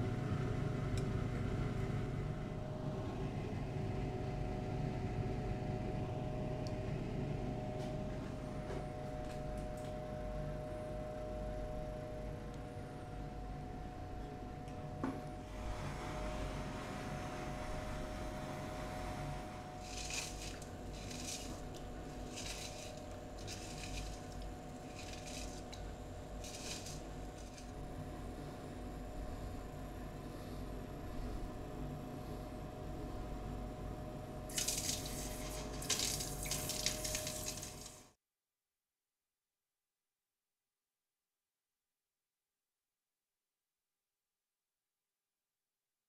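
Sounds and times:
steady rush with low hum: 17.8s - 37.8s
water splashing in steel bowl: 34.5s - 37.9s.

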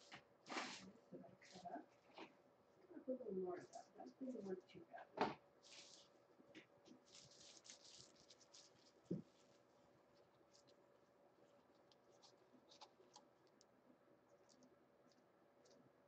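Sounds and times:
faint scratching and rustling: 0.0s - 16.0s.

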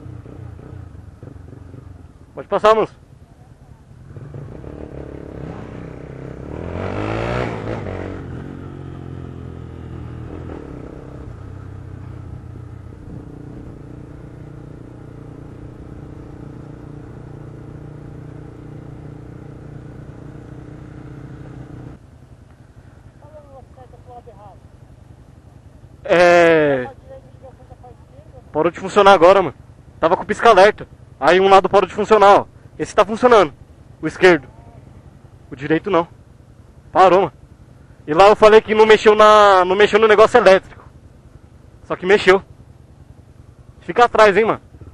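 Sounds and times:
motorcycle engine revving: 0.0s - 2.8s, 3.9s - 44.9s.

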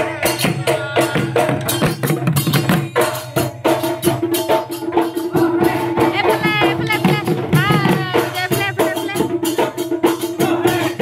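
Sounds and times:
dhol beaten in fast rhythm: 0.0s - 11.0s
hand percussion: 0.0s - 11.0s.

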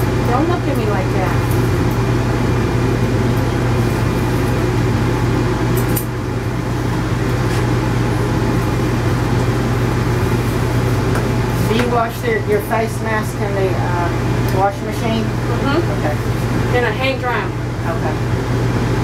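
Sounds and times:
machine hum with hiss: 0.0s - 19.0s.

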